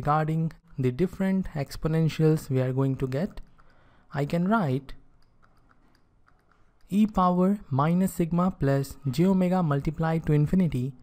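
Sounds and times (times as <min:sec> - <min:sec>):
stylus tapping on pen tablet: 0:05.1 - 0:07.0.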